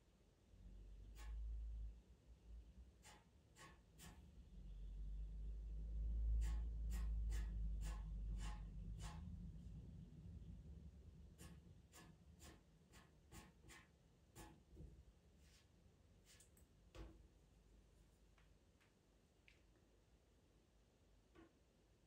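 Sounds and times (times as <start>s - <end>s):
pencil scratching on paper: 1.1s - 1.5s, 3.0s - 4.3s, 6.3s - 9.4s, 11.3s - 14.7s
low rumble: 4.7s - 11.3s.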